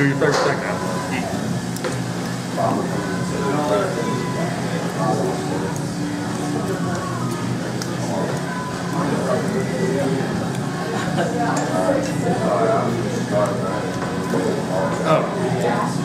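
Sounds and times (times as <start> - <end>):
people talking indistinctly: 0.0 - 16.0.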